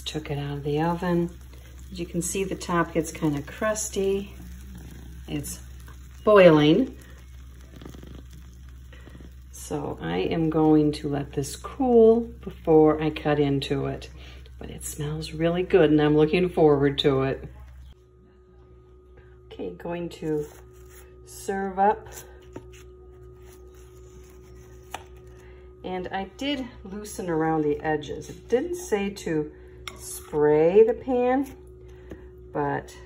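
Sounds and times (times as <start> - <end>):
sauce bubbling and crackling: 0.0 - 18.0
steady low hum: 0.0 - 33.0.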